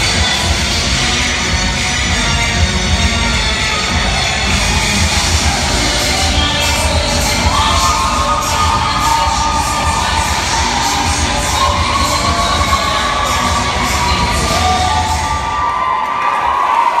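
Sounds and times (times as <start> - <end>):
crowd cheering and shouting: 0.0 - 17.0
high-pitched shouts: 4.4 - 17.0.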